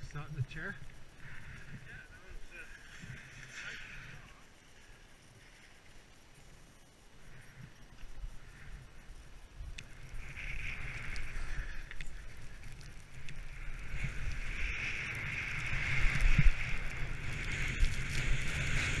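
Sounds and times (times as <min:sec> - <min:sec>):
skis scraping over snow: 0:00.0 - 0:19.0
wind rumbling on microphone: 0:00.0 - 0:19.0.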